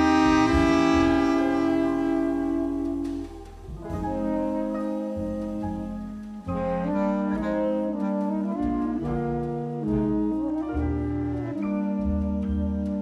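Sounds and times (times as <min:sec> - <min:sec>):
double bass: 0:00.0 - 0:13.0
drums: 0:00.0 - 0:13.0
saxophones and bass clarinet chords: 0:00.0 - 0:13.0.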